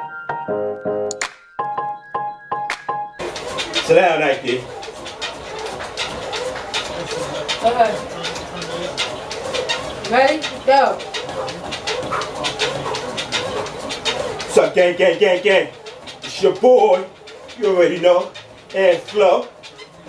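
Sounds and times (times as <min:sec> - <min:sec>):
footfalls on treadmill belt: 0:03.2 - 0:20.0.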